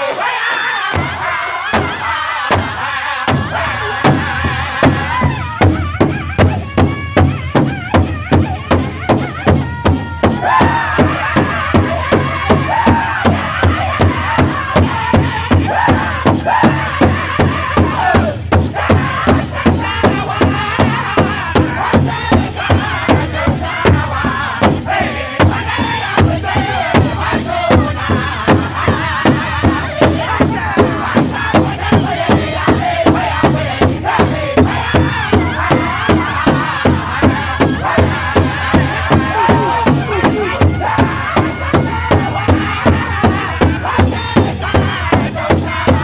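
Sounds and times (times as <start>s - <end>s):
group singing in high voices: 0.0s - 46.0s
large drum beating: 1.0s - 46.0s.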